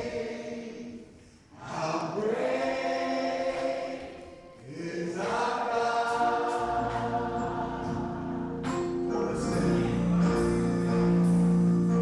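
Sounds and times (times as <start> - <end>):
gospel singing: 0.0 - 12.0
keyboard chords: 2.7 - 12.0
low bass: 7.4 - 12.0.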